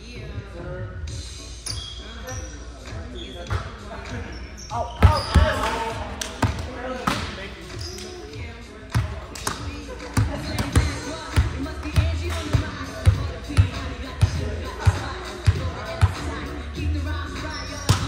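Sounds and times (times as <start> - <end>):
shoes squeaking on floor: 1.6 - 5.9, 7.6 - 8.5, 17.4 - 18.0.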